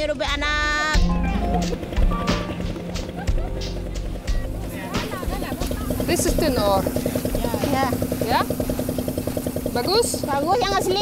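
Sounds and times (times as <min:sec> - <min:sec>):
small engine running: 0:00.4 - 0:11.0.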